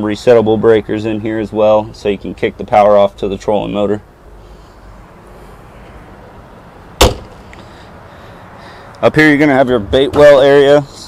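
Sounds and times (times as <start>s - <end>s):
hatch lid slamming shut: 7.0s - 7.4s.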